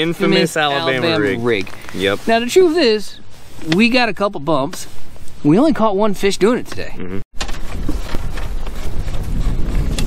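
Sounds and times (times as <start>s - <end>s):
wind buffeting microphone: 7.5s - 10.0s.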